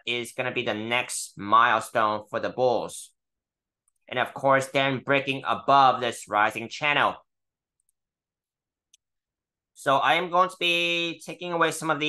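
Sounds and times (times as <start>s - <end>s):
faint computer mouse click: 8.9s - 9.1s.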